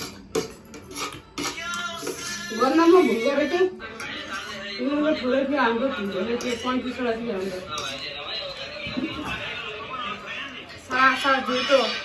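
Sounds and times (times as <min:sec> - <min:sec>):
forks scraping against plates: 0:00.0 - 0:05.2, 0:05.9 - 0:09.6.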